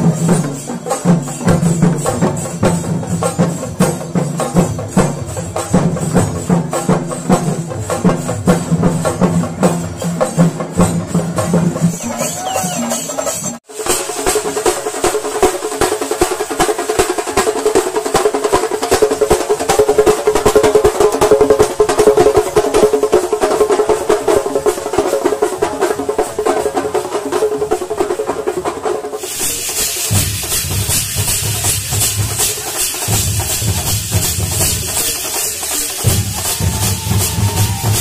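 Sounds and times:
fast dense drumming: 0.0s - 38.0s
deep booming drum beats: 29.3s - 38.0s.

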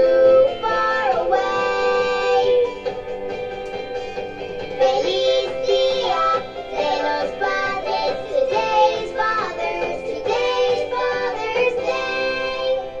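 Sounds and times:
children's song with backing: 0.0s - 13.0s.

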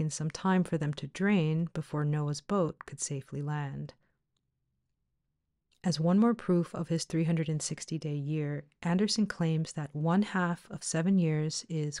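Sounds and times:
narrator speaking: 0.0s - 3.9s, 5.8s - 12.0s.

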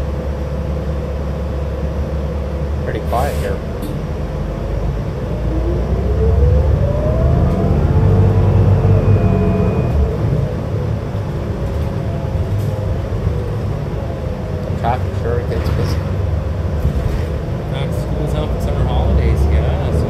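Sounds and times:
bus engine rumble and whine: 0.0s - 20.0s.

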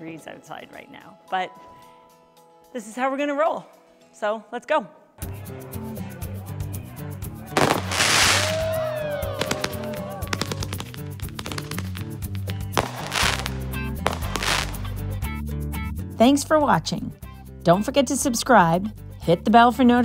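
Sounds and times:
background music with steady beat: 5.2s - 20.0s
fireworks bursting and crackling: 7.6s - 14.9s.

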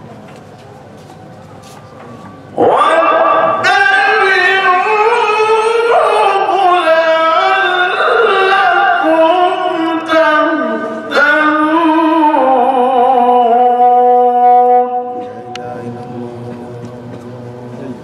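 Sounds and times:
man chanting melodically: 2.5s - 18.0s.

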